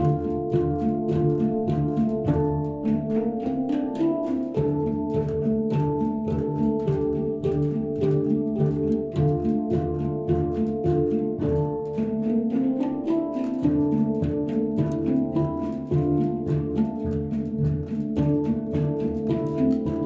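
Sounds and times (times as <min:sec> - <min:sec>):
handpans played in rhythm: 0:00.0 - 0:20.0.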